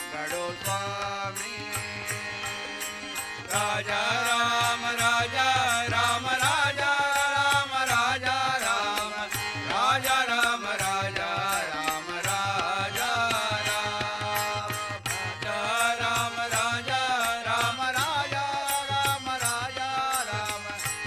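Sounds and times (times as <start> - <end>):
harmonium held tones: 0.0 - 21.0
group devotional singing: 3.2 - 19.6.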